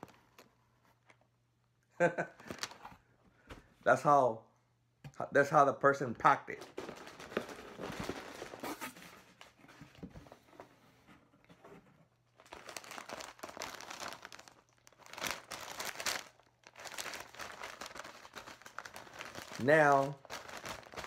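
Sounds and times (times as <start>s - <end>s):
packing paper crinkling: 6.6s - 9.2s, 12.3s - 21.0s.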